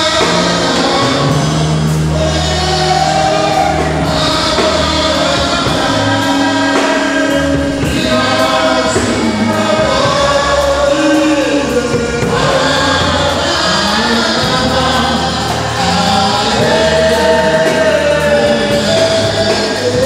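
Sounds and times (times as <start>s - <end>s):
gospel choir singing: 0.0s - 20.0s.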